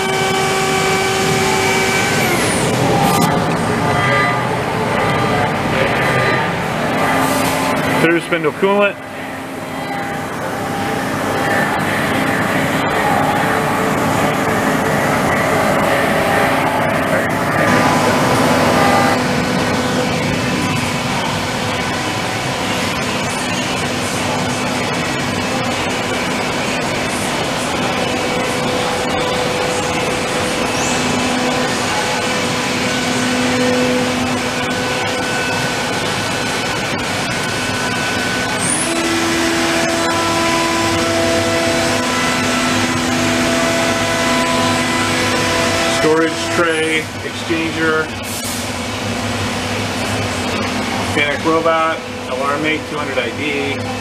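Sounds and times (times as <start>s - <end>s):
high-pressure coolant spraying: 0.0s - 54.0s
machine-shop noise: 0.0s - 54.0s
steady machine tones: 0.0s - 54.0s.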